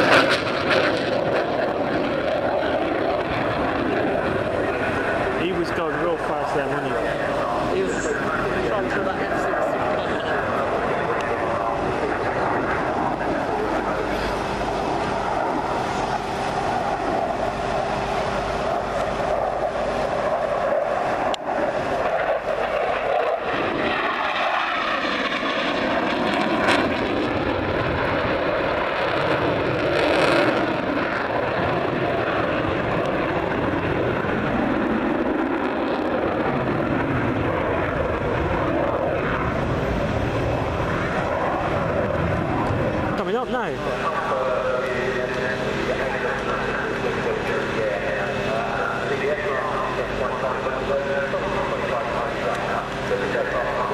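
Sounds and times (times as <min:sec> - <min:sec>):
jet engine roar: 0:00.0 - 0:53.9.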